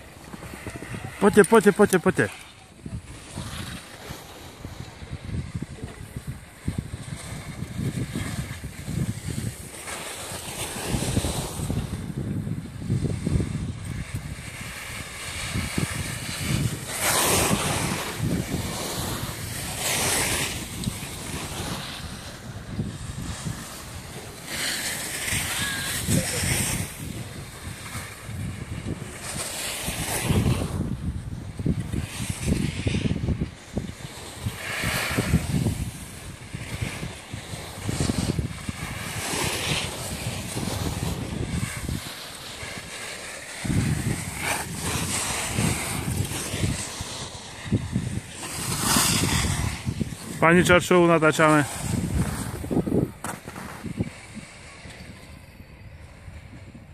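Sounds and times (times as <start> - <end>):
skis scraping across packed snow: 0.0 - 56.9
wind buffeting microphone: 0.0 - 56.9.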